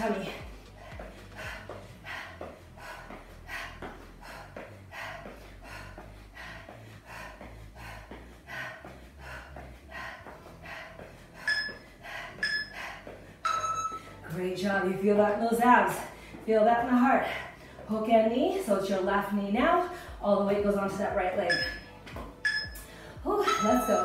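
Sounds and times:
woman breathing heavily: 0.0 - 14.4, 15.2 - 24.0
short electronic beeps: 13.5 - 14.0, 21.5 - 22.8.

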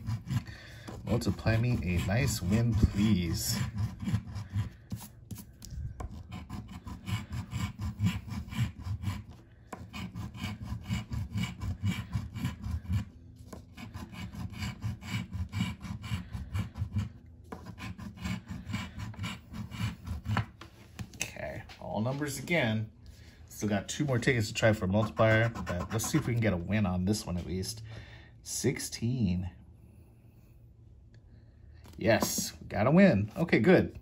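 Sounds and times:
coin scratching paper ticket: 0.0 - 20.4, 25.0 - 26.5.

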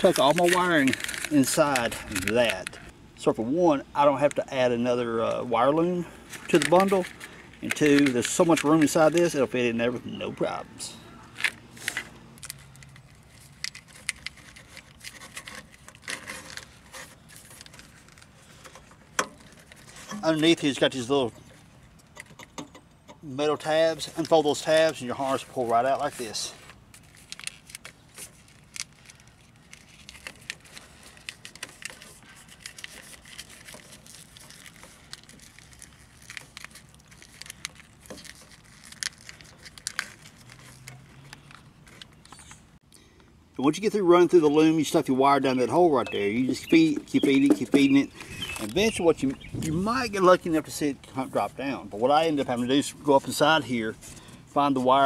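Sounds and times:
hands handling wires and plastic: 0.0 - 2.9, 6.2 - 10.5, 11.3 - 43.3, 44.9 - 55.0.

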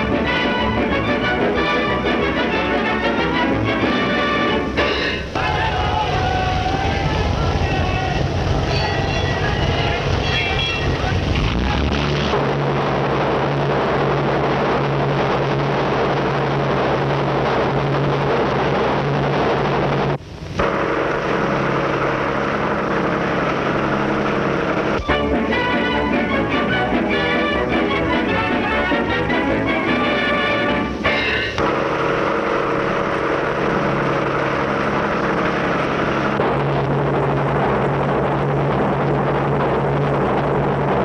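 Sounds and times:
crowd noise: 0.0 - 20.0, 20.6 - 41.0
film soundtrack music: 0.0 - 20.0, 20.6 - 41.0
steady low hum: 3.7 - 41.0.

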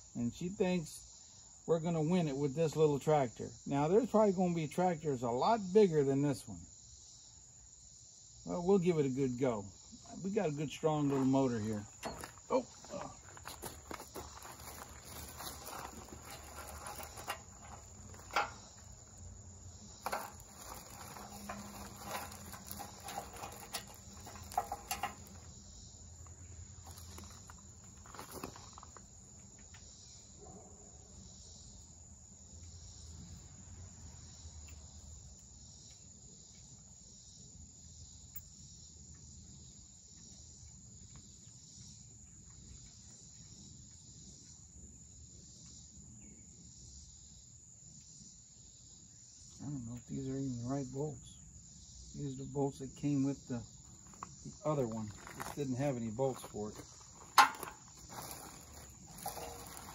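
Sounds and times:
high insect chirr: 0.0 - 59.9
metal parts clicking and knocking: 14.4 - 18.9, 20.0 - 25.5, 57.2 - 57.9.

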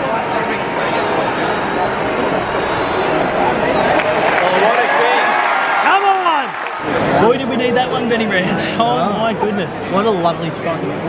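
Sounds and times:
nearby spectators' voices: 0.0 - 5.4
stadium crowd hubbub: 0.0 - 11.0.

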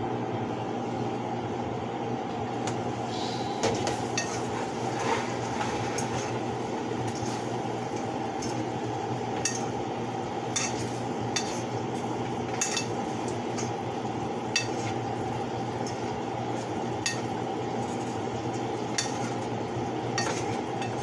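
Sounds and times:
chicken sizzling in a frying pan: 3.8 - 21.0.

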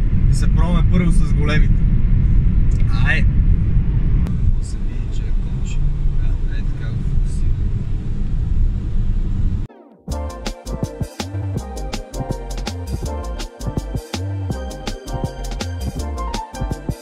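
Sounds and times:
car cabin road and engine rumble: 0.3 - 9.7.

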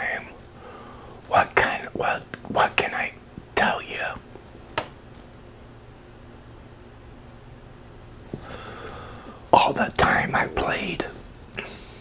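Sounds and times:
man whispering: 0.0 - 0.4, 1.2 - 4.2, 9.5 - 11.2.

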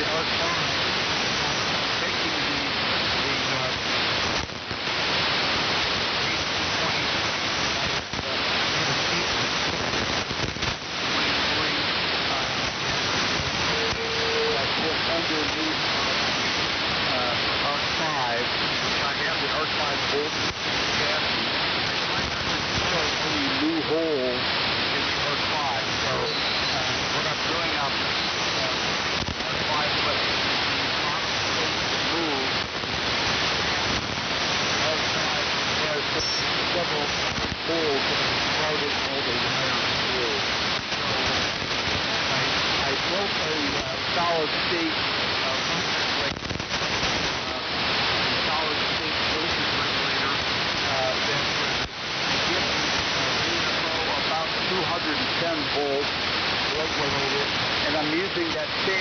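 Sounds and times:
weak unintelligible voice: 0.0 - 1.0, 1.6 - 4.0, 6.2 - 7.4, 8.0 - 10.1, 11.0 - 12.8, 13.6 - 30.3, 30.9 - 32.6, 34.8 - 46.5, 47.3 - 51.8, 52.4 - 59.0
radio receiver hiss and static: 0.0 - 59.0.

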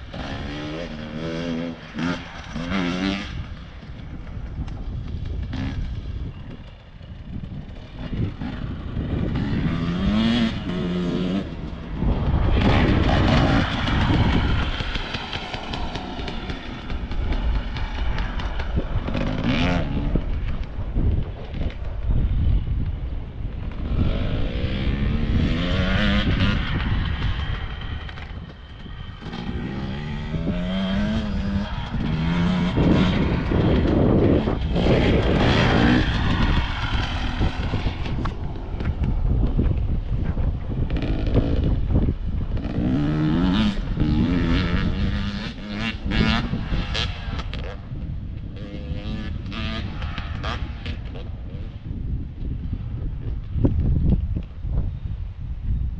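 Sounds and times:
dirt bike engines revving: 0.0 - 52.1.

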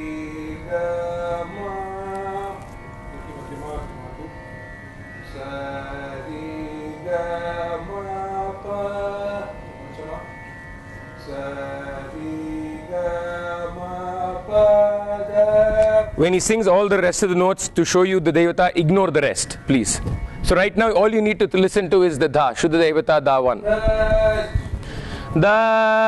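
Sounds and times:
steady drone: 0.0 - 26.0.

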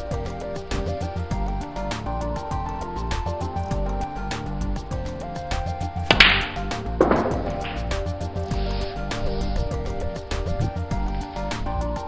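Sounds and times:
background music with a beat: 0.0 - 12.0
snooker balls hitting: 6.1 - 8.4.

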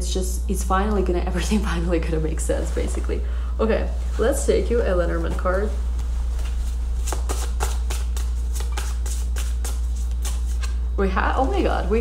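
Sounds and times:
low hum: 0.0 - 12.0
cards being shuffled: 6.4 - 10.8.

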